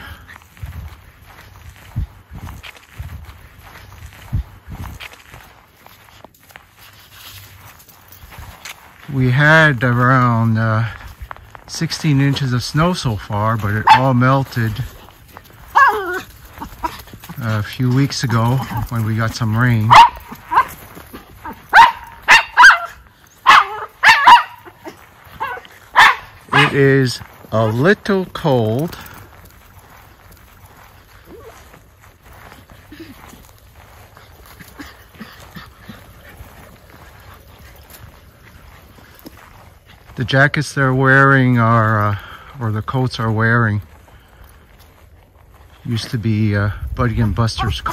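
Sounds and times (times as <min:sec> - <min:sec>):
dog high-pitched call: 0:15.8 - 0:16.2, 0:21.7 - 0:26.8.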